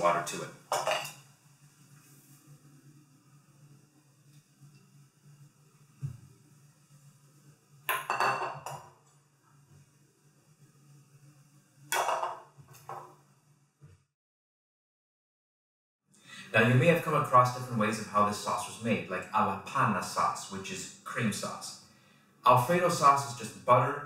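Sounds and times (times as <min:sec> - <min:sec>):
glass clinking: 0:00.7 - 0:01.2, 0:07.9 - 0:08.9, 0:11.9 - 0:13.0
glass knock on countertop: 0:07.9 - 0:08.8, 0:12.0 - 0:13.1.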